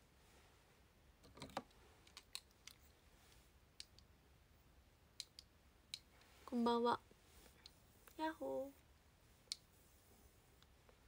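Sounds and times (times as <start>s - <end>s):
faint sharp clicks: 3.8s - 4.1s, 5.2s - 6.3s, 9.5s - 9.7s.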